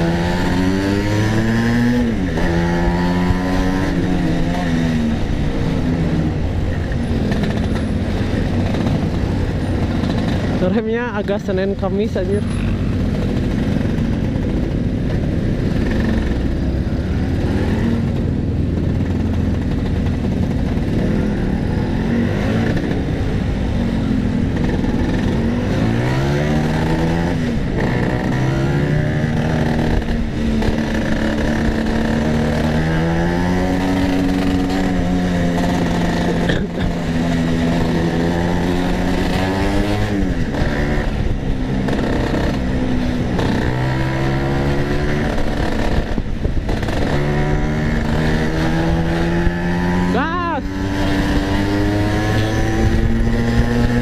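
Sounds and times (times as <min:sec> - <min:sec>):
scooter engine revving: 0:12.2 - 0:54.0.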